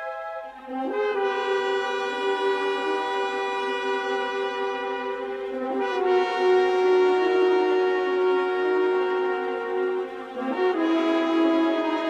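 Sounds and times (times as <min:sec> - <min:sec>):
brass section sustained chord: 0:00.0 - 0:12.0.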